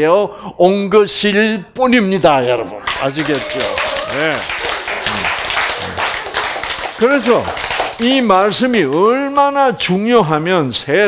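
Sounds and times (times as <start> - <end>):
audience applause: 2.8 - 9.1.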